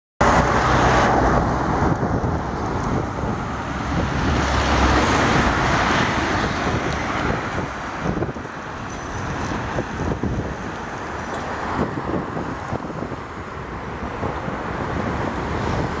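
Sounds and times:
vehicles driving past: 0:00.2 - 0:16.0.

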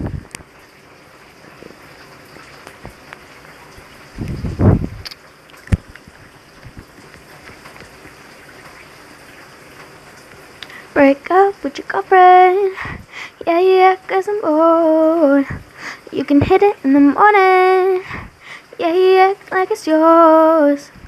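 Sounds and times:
low rustling or blowing noise: 0:00.0 - 0:00.6, 0:03.8 - 0:08.0, 0:15.1 - 0:16.7, 0:20.8 - 0:21.0.

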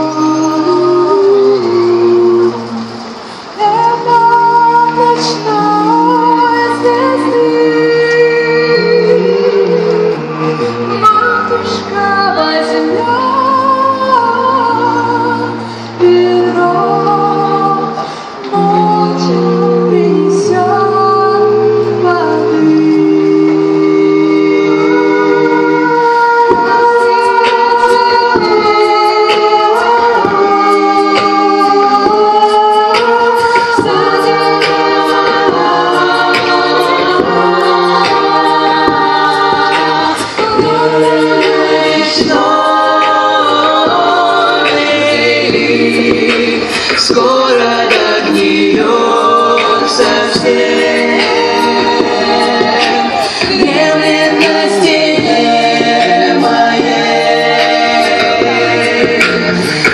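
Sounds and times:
vocal ensemble singing chords: 0:00.0 - 0:59.9.

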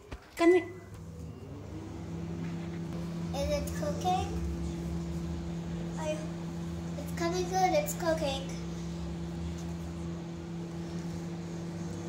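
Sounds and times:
microwave oven humming: 0:00.4 - 0:12.0.

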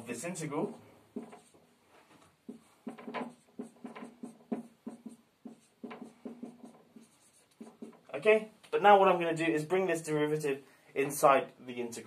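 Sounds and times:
marker writing on whiteboard: 0:00.3 - 0:08.3.

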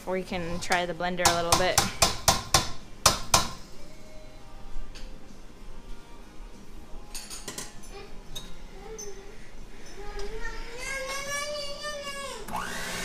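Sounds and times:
kitchen utensils clinking: 0:07.1 - 0:09.1.

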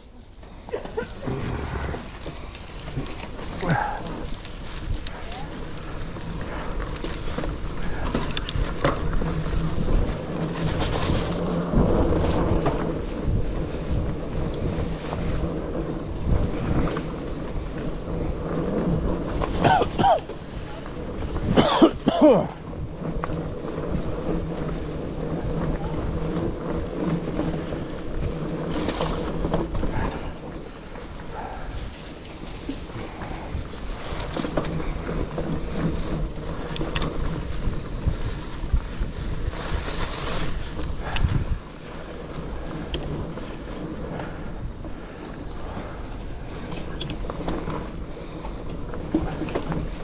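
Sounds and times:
bike rattle: 0:00.0 - 0:50.0
bike tyres rolling through leaves: 0:00.0 - 0:50.0
wind on microphone: 0:00.0 - 0:50.0.

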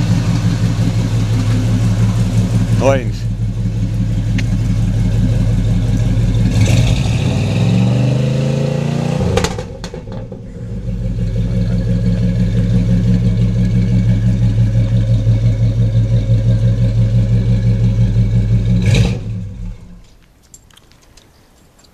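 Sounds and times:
car engine idling and revving: 0:00.0 - 0:20.2.

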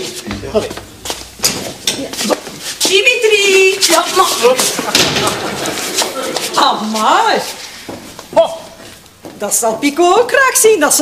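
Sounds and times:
person speaking: 0:00.0 - 0:04.8.

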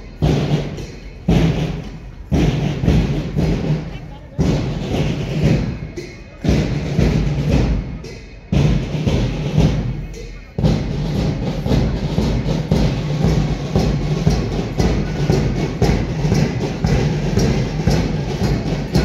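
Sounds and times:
marching band drums: 0:00.0 - 0:19.0.

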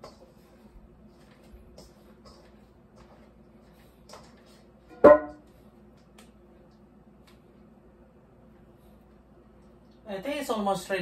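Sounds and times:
hands working dough: 0:00.0 - 0:04.9.

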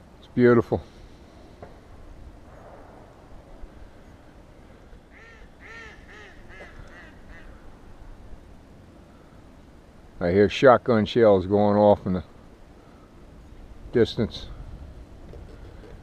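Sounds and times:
faint background noise: 0:00.0 - 0:16.0
distant ducks or geese calling: 0:03.6 - 0:08.2.

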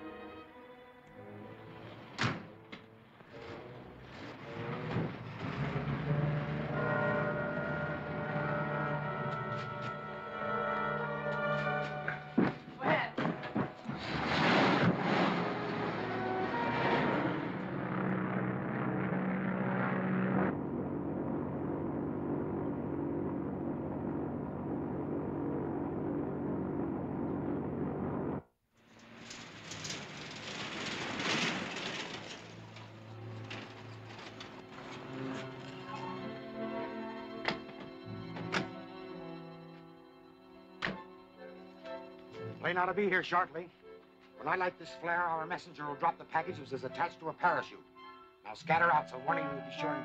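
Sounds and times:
background film music: 0:00.0 - 0:27.2, 0:32.7 - 0:50.0
car engine: 0:03.2 - 0:39.7
propeller airliner droning in flight: 0:04.9 - 0:12.2, 0:15.1 - 0:28.4.

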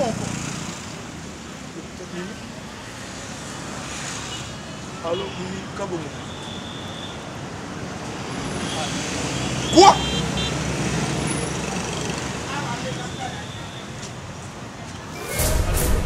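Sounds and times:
passing traffic rumble: 0:00.0 - 0:06.2, 0:07.2 - 0:16.0
man shouting: 0:09.8 - 0:10.0.

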